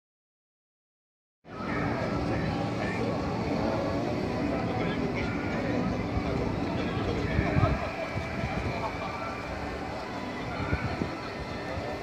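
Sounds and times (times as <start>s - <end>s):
low crowd rumble: 1.5s - 12.0s
murmur of voices: 1.5s - 12.0s.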